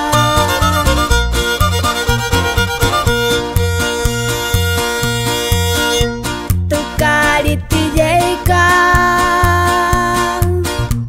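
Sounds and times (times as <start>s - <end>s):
violin melody: 0.0s - 6.4s
string band music: 0.0s - 8.5s.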